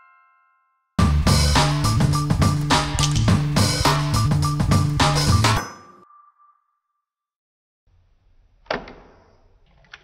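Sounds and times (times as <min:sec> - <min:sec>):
high ringing tone: 0:05.6 - 0:07.2.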